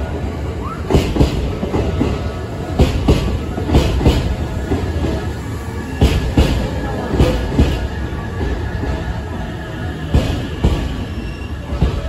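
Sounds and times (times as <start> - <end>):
train rumbling into station: 0.0 - 12.0.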